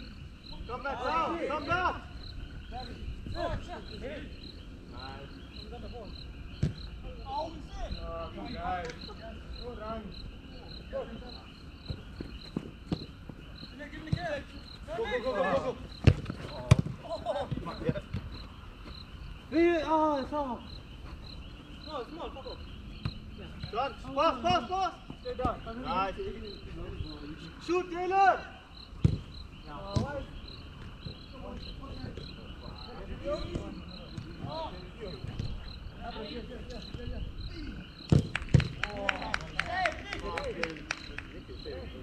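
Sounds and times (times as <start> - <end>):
night insects chirping: 0.0 - 42.0
football kick thuds: 6.6 - 6.9, 11.8 - 13.4, 16.0 - 19.0, 29.0 - 29.3, 29.9 - 30.2, 38.1 - 38.8.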